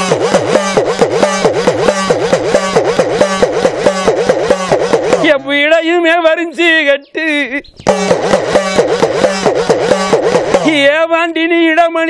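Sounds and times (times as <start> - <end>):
hourglass drum played fast: 0.0 - 5.4, 7.9 - 11.0.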